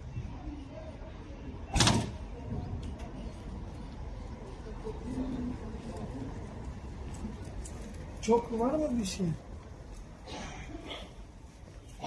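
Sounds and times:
sliding door slamming shut: 1.7s - 2.2s.

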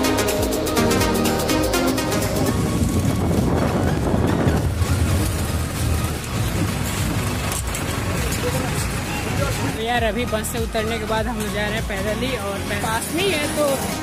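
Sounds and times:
bus engine rumble: 0.0s - 14.0s
road noise: 0.0s - 14.0s.

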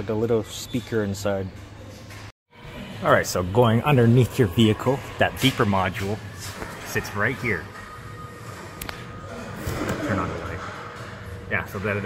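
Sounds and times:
steady low background hum: 1.2s - 12.0s.

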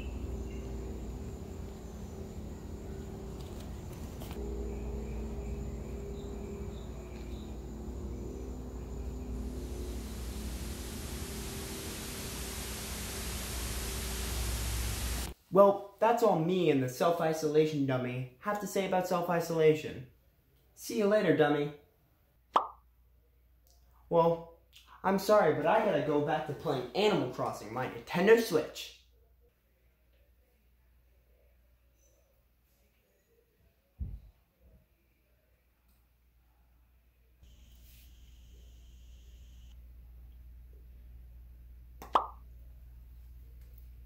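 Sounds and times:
low steady hum: 0.0s - 15.4s.

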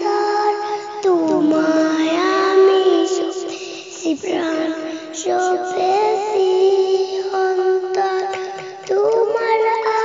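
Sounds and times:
girl singing: 0.0s - 10.0s.

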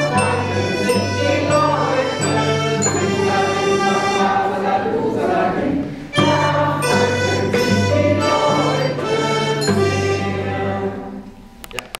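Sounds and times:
accordion sustained chords: 0.0s - 11.7s
instrumental ensemble playing: 0.0s - 11.7s.

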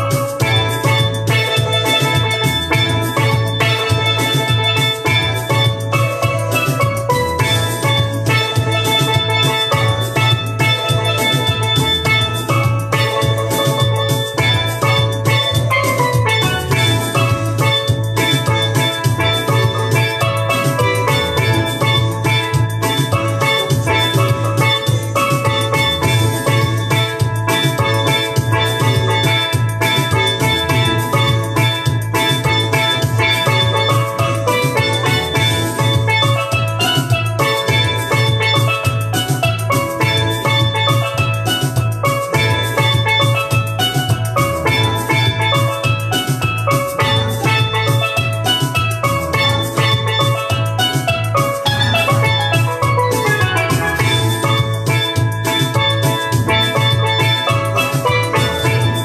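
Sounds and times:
backing track with beat: 0.0s - 59.0s
bass line: 0.0s - 59.0s
steel pan melody: 0.0s - 59.0s.

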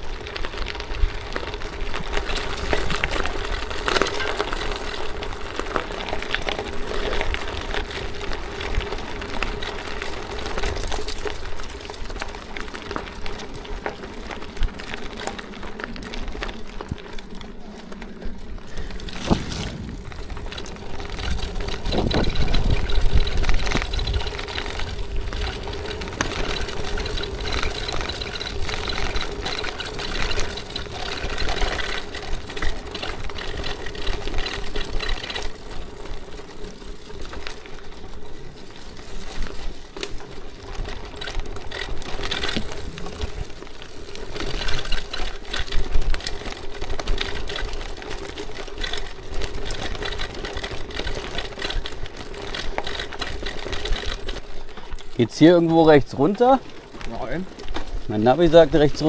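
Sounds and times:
bicycle tyres crunching gravel: 0.0s - 59.0s
bike rattling over stones: 0.0s - 59.0s.

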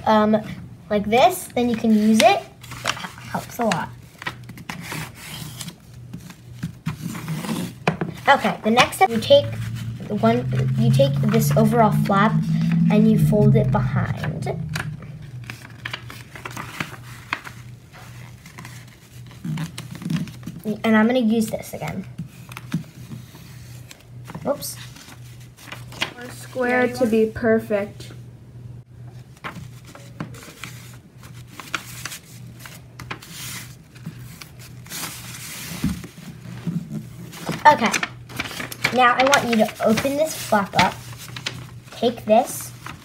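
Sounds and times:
low steady hum: 0.0s - 43.0s
paper crinkling: 1.9s - 9.9s, 15.4s - 20.7s, 24.8s - 26.4s, 29.2s - 43.0s.

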